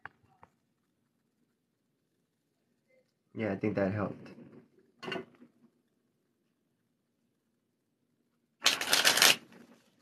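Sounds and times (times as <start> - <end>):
playing cards riffled: 8.6 - 9.7.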